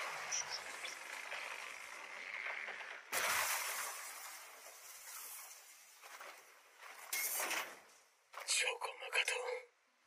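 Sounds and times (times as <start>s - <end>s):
person speaking: 8.4s - 9.8s.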